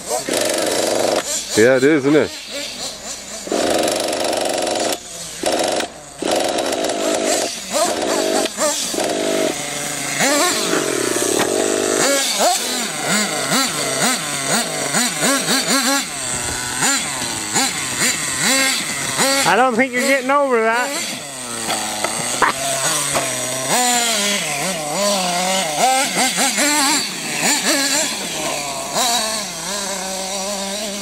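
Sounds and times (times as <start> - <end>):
small nitro engine revving: 0.0 - 31.0.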